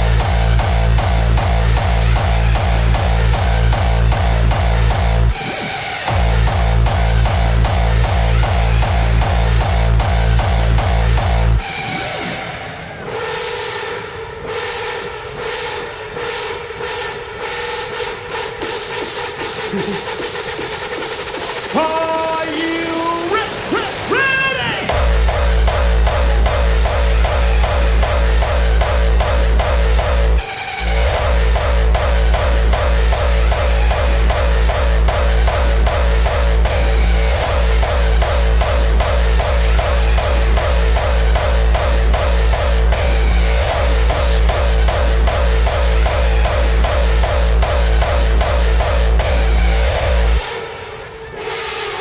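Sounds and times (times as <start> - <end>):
distorted kick drum beat: 0.0 - 11.7, 18.3 - 50.4
held synth chords: 0.0 - 52.0
synth stabs: 0.0 - 52.0.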